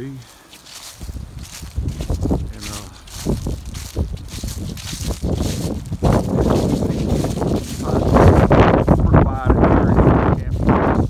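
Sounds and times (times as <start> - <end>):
footsteps on grass: 0.0 - 11.0
wind buffeting microphone: 0.8 - 11.0.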